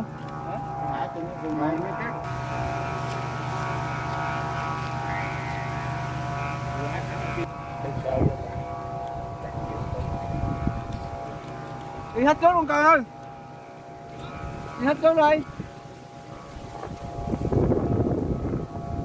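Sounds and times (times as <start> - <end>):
kite flutes droning: 0.0 - 19.0
wind noise: 8.0 - 12.5, 15.4 - 19.0.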